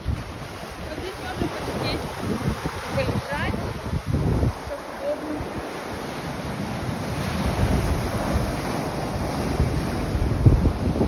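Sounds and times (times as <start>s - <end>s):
surf breaking on rocky shore: 0.0s - 11.0s
wind buffeting microphone: 0.0s - 11.0s.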